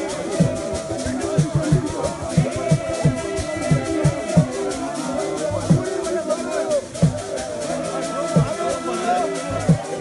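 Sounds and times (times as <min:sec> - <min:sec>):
deep drum beat: 0:00.0 - 0:06.2, 0:06.8 - 0:07.6, 0:08.3 - 0:08.7, 0:09.5 - 0:10.0
crowd singing a church song: 0:00.0 - 0:10.0.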